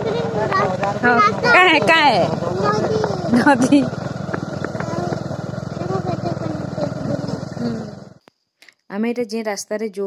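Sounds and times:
motorcycle engine running: 0:00.0 - 0:08.2.

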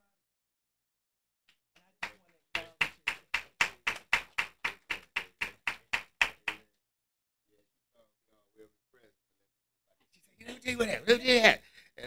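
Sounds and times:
hands clapping in steady rhythm: 0:01.5 - 0:06.8.

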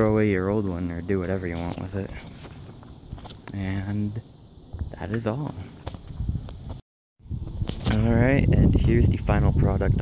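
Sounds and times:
man speaking: 0:00.0 - 0:02.2, 0:03.5 - 0:04.3, 0:04.9 - 0:05.7
wind on microphone: 0:04.7 - 0:10.0.

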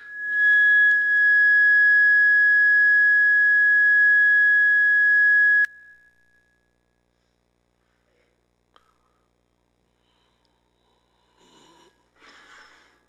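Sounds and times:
high-pitched feedback squeal: 0:00.0 - 0:06.5.

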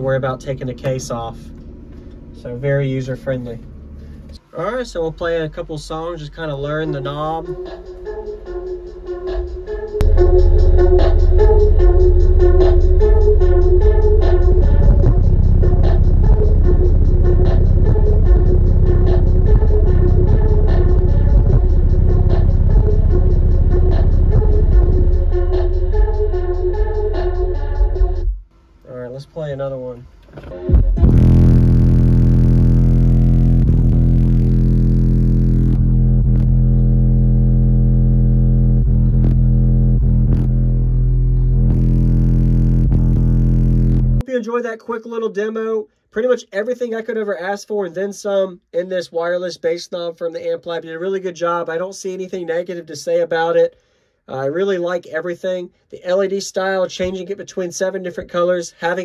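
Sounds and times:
bass-heavy music through subwoofer: 0:00.0 - 0:28.4, 0:30.4 - 0:44.2
long deep bass notes: 0:00.0 - 0:28.4, 0:30.5 - 0:44.3.

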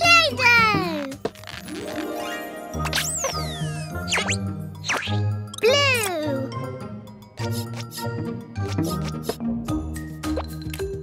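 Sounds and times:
children's cartoon music: 0:00.0 - 0:11.0.

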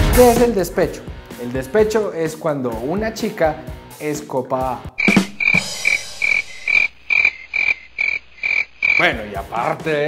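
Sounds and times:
cricket chirping: 0:05.0 - 0:09.1.

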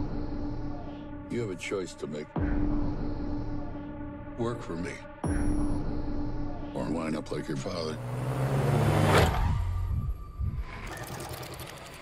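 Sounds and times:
car speeding past in tunnel: 0:08.0 - 0:10.1.

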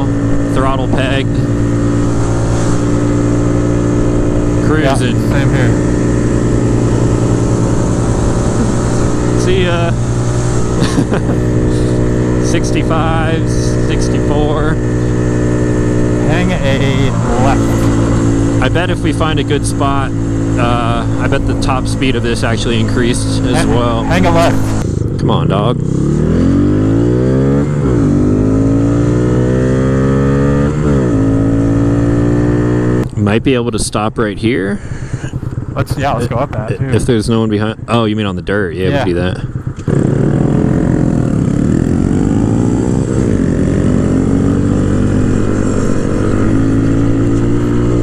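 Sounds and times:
motorcycle engine running under load: 0:00.0 - 0:33.1, 0:34.8 - 0:48.0.

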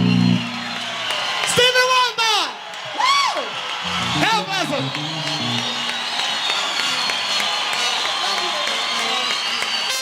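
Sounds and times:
crowd cheering and applause: 0:00.0 - 0:10.0
salsa band playing live: 0:03.9 - 0:06.3.

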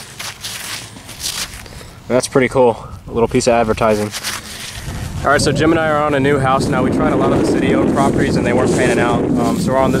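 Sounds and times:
glove rustling against metal tag: 0:00.0 - 0:01.8, 0:03.6 - 0:05.1.

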